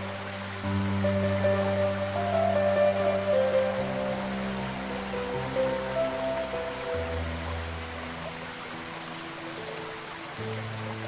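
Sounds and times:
slow soothing piano music: 0:00.0 - 0:11.0
waterfall rushing: 0:00.0 - 0:11.0.

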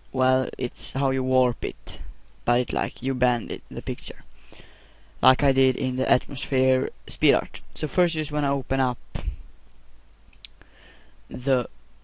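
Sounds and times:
low steady background hum: 0:00.0 - 0:12.0.

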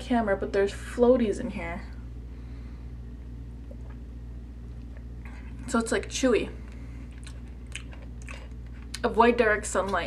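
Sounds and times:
steady low hum: 0:00.0 - 0:10.0
mouth chewing: 0:06.7 - 0:09.1.

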